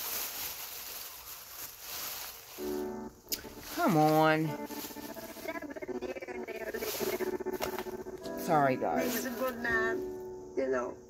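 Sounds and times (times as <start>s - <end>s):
plastic bag rustling: 0.0s - 10.2s.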